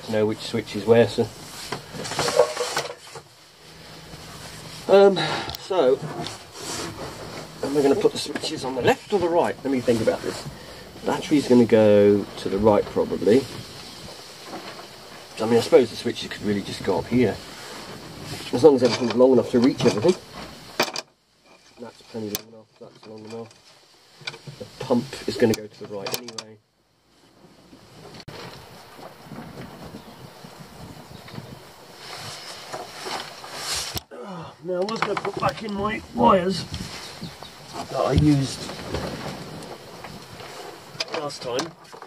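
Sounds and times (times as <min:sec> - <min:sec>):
rustling wires: 0:00.0 - 0:42.0
man murmuring: 0:34.1 - 0:34.7.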